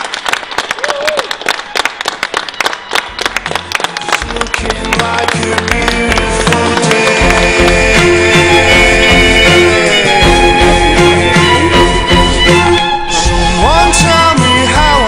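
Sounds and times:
people clapping and cheering: 0:00.0 - 0:12.8
person whooping: 0:00.8 - 0:01.3
music with bass line: 0:03.1 - 0:15.0.

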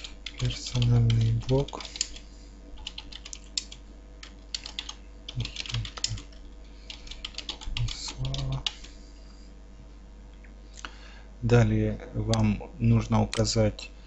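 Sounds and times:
computer keyboard typing: 0:00.0 - 0:02.2, 0:02.8 - 0:08.9.

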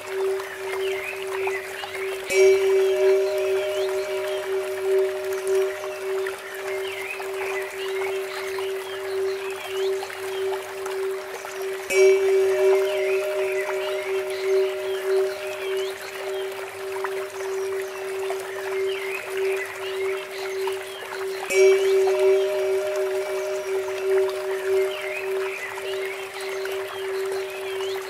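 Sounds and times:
birds chirping: 0:00.0 - 0:28.0
pulsing drone tone: 0:00.0 - 0:28.0
trickling water: 0:00.0 - 0:28.0
bell ringing: 0:02.3 - 0:07.1, 0:11.9 - 0:17.0, 0:21.5 - 0:26.2.

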